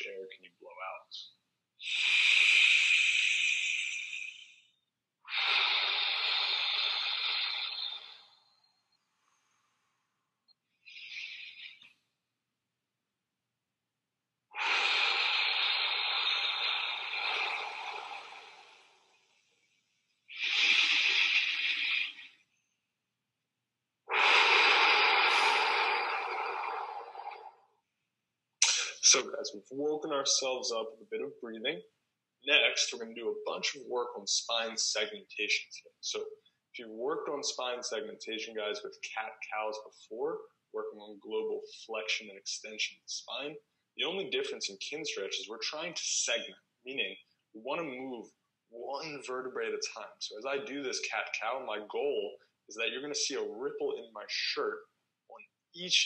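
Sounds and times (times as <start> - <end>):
man breathing deeply: 1.8 - 4.6, 5.3 - 8.3, 14.6 - 19.1, 20.3 - 22.3, 24.1 - 27.6.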